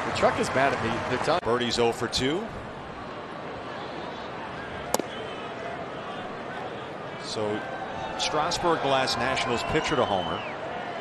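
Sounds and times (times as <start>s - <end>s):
ball smacking into mitt: 4.9s - 5.2s.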